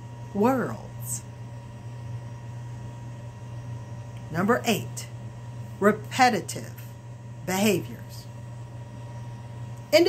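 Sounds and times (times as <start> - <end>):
steady low hum: 0.0 - 10.0
woman speaking: 0.3 - 1.3, 4.3 - 5.2, 5.8 - 8.3.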